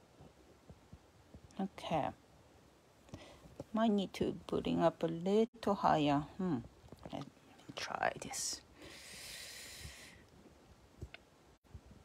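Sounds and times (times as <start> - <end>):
soft hiss: 6.3 - 12.0.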